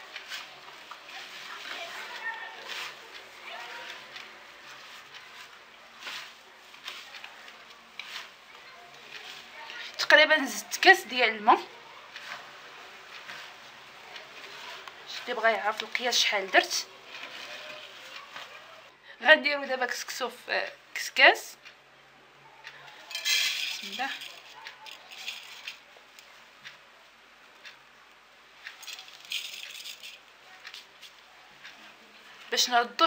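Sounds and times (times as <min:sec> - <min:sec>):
grains rustling in metal basket: 0:00.0 - 0:07.4, 0:08.0 - 0:08.4, 0:23.1 - 0:25.8, 0:28.8 - 0:30.3
gritty rustle of grains by hand: 0:08.0 - 0:08.4.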